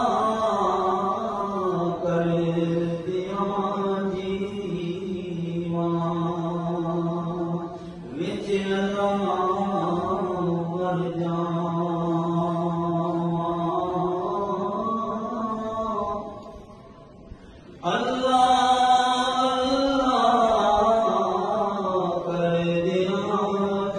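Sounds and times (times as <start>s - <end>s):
men chanting in long held tones: 0.0s - 16.6s, 17.8s - 23.9s.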